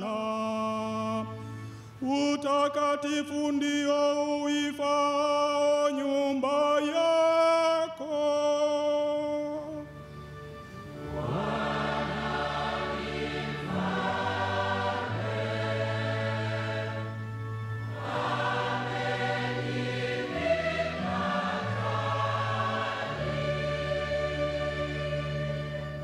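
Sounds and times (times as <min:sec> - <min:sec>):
choir singing: 0:10.8 - 0:26.0.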